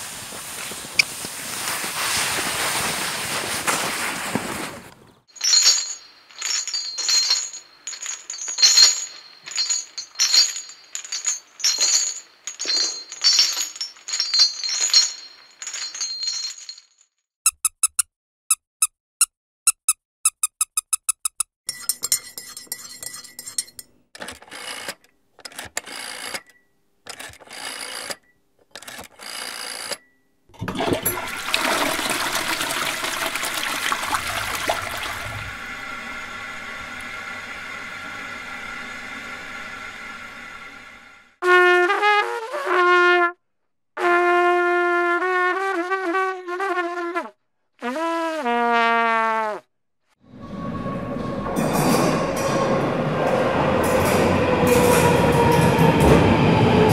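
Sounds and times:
slow footsteps: 0.0s - 16.6s
chains rattling: 5.3s - 17.0s
teaspoon clinking in a cup: 21.7s - 23.9s
toilet flushing: 30.6s - 40.8s.

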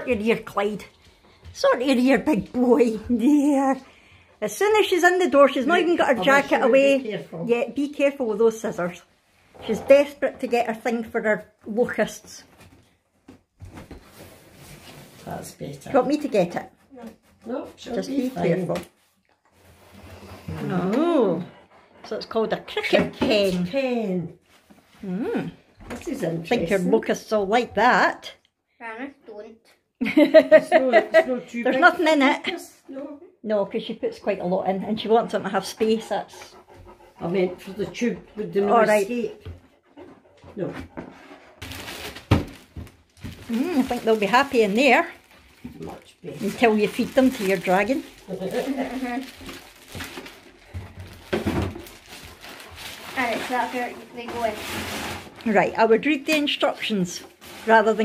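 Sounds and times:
plastic packaging rustling: 41.3s - 58.0s.

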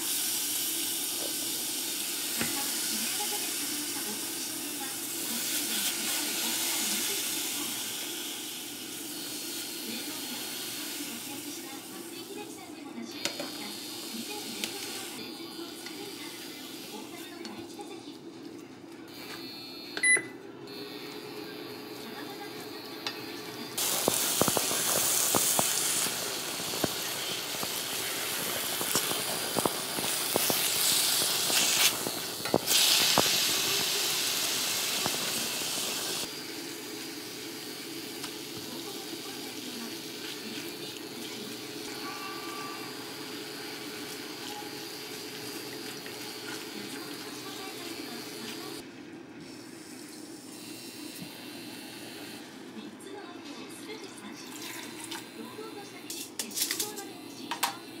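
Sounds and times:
meat sizzling in a pot: 0.0s - 12.4s, 23.7s - 48.8s.

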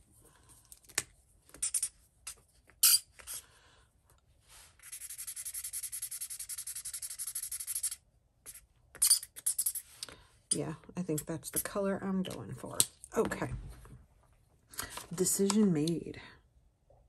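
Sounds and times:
marker scratching on paper: 4.7s - 9.9s.

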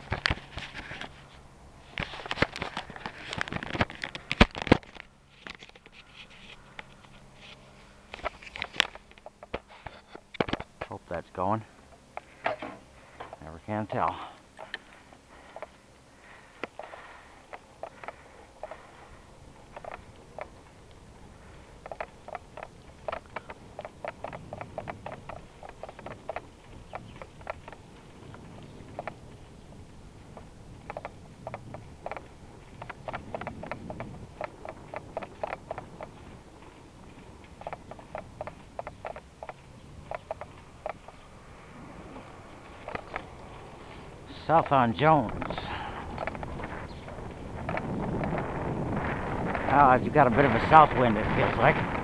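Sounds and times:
bicycle clicks and rattles: 0.0s - 10.9s, 14.1s - 41.6s, 42.3s - 52.0s
wind and road rumble: 0.0s - 52.0s.

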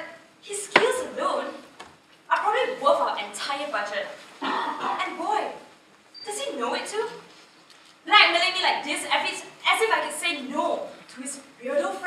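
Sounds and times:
woman speaking: 0.5s - 1.6s, 2.3s - 4.2s, 4.9s - 5.6s, 6.3s - 7.2s, 8.1s - 12.0s.

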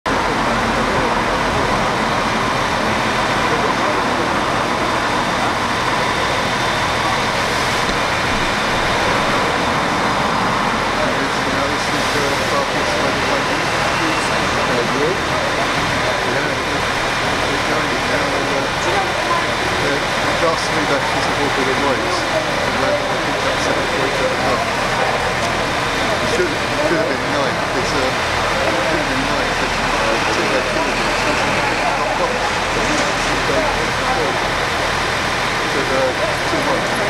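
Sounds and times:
crowd chatter: 0.1s - 37.0s.

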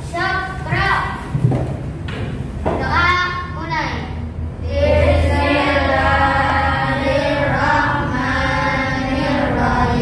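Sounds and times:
children singing: 4.7s - 10.0s.

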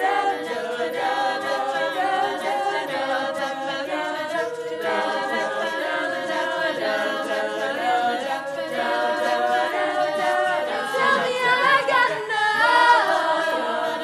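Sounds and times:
girls singing in close harmony: 0.0s - 14.0s.

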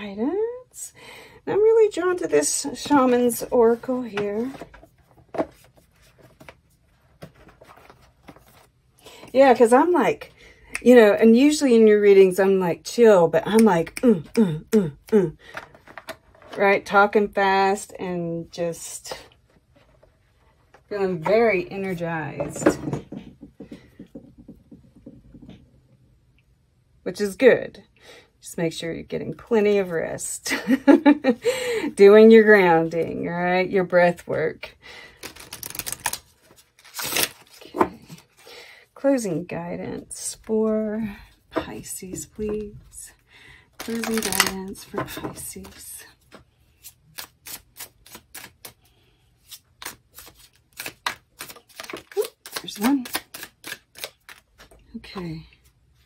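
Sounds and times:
cards being shuffled: 35.1s - 38.4s, 43.8s - 45.0s, 45.6s - 48.8s, 49.4s - 54.8s.

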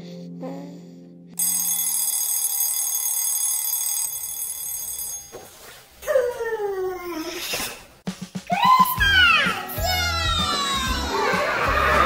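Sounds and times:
alarm clock bell ringing: 1.4s - 5.7s.

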